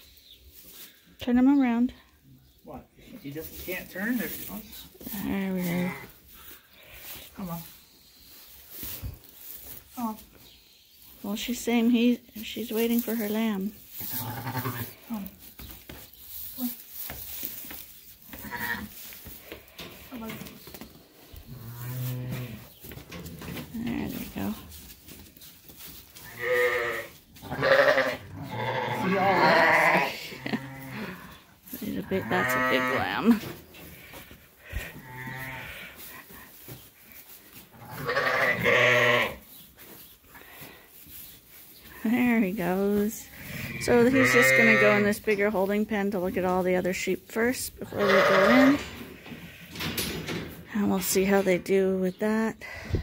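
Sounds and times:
sheep bleating: 0:14.2 - 0:15.0, 0:26.2 - 0:31.2, 0:32.1 - 0:33.4, 0:35.0 - 0:35.9, 0:37.8 - 0:39.4, 0:43.4 - 0:45.2, 0:47.9 - 0:48.8.

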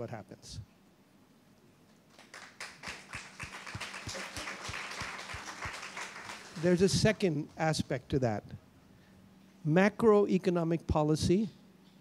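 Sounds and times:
audience applause: 0:02.1 - 0:07.2.

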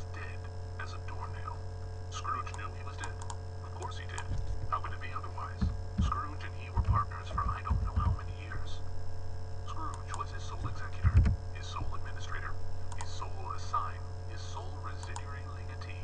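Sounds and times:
sped up audiobook narration: 0:00.0 - 0:08.9, 0:09.6 - 0:16.0
mains hum: 0:00.0 - 0:16.0.

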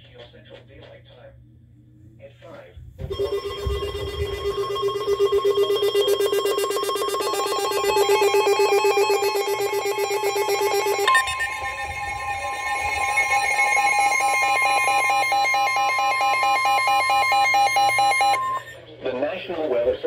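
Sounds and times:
rapid electronic alarm beeping: 0:03.1 - 0:18.8
steady single-pitch alert tone: 0:03.1 - 0:18.8.

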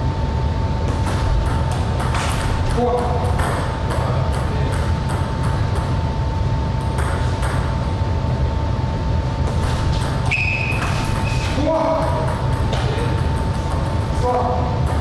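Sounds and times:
low room rumble: 0:00.0 - 0:15.0
steady high-pitched hum: 0:00.0 - 0:15.0.

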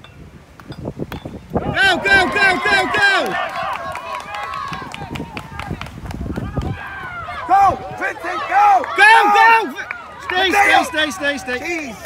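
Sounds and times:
people shouting: 0:01.6 - 0:05.6, 0:06.4 - 0:11.5.

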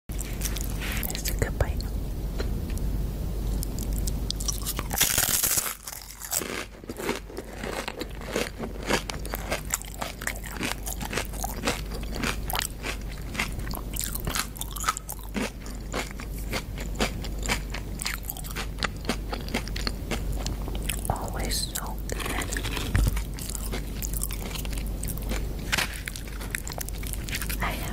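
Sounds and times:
chewing crunchy chips: 0:00.1 - 0:01.4, 0:03.6 - 0:27.9.

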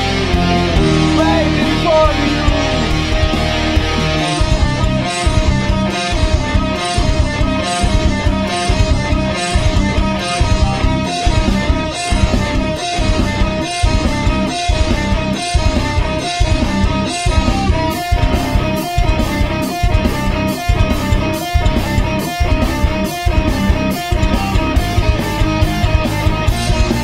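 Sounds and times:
electric guitar riff: 0:00.0 - 0:27.0
pulsing bass: 0:00.0 - 0:27.0.

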